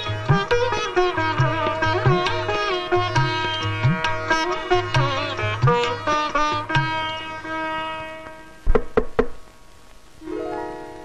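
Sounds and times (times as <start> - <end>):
drum strokes with deep thump: 8.6 - 9.4.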